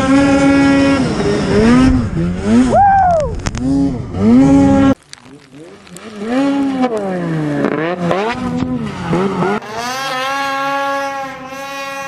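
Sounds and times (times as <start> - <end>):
snowmobile engine revving: 0.0 - 12.0.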